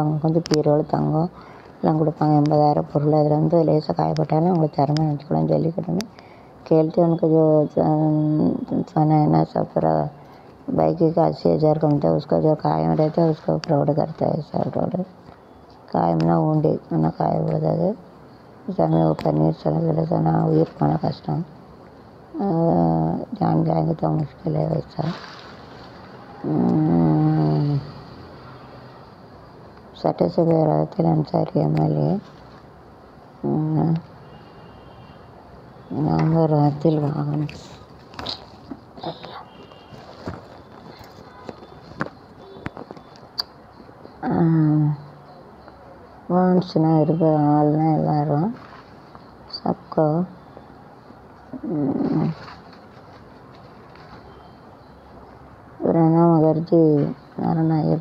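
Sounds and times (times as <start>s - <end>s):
soft breath: 6.1s - 6.6s.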